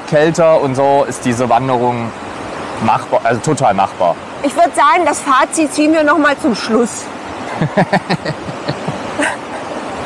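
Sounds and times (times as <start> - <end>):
river water rushing: 0.0 - 10.0
laughter: 7.5 - 9.7.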